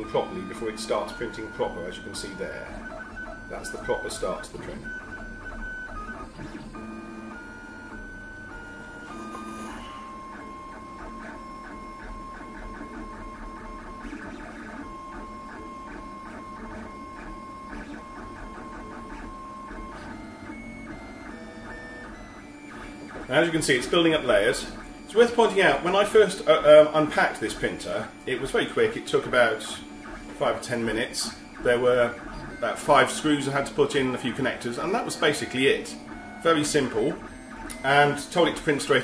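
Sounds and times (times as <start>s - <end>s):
stepper motors whining: 0.0s - 39.0s.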